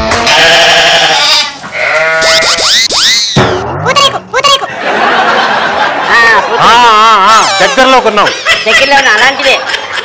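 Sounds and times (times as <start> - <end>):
comic bleat-like animal cry: 0.0 - 4.7, 6.7 - 8.0.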